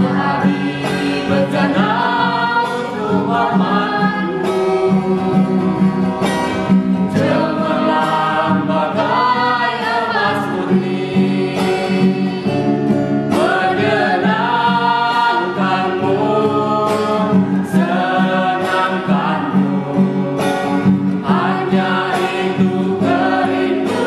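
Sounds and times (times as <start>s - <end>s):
acoustic guitar: 0.0s - 24.0s
group of voices singing: 0.0s - 24.0s.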